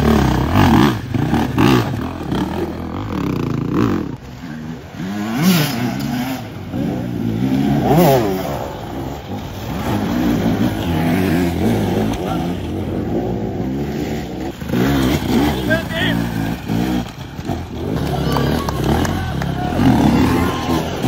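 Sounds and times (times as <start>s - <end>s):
dirt bike engines revving: 0.0s - 21.0s.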